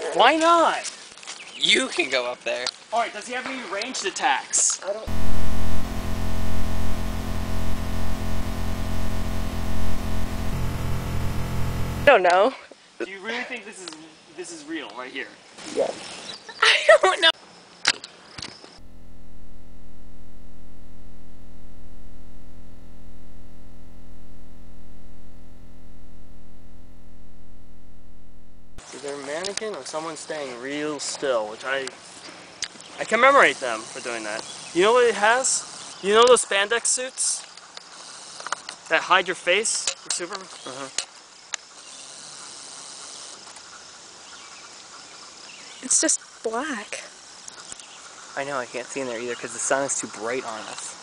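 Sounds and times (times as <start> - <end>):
steady electronic buzz: 5.1 - 12.1, 18.8 - 28.8.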